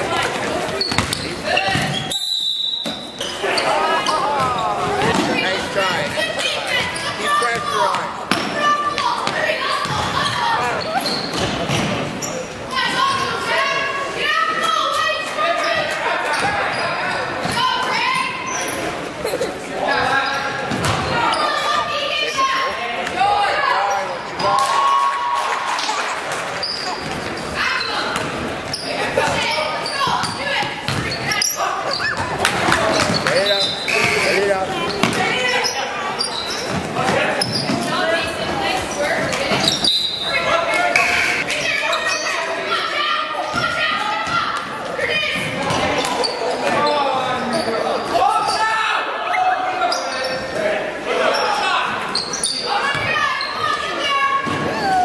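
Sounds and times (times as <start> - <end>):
voices calling out: 0.0 - 55.0
basketball bouncing on wooden floor: 30.2 - 31.1.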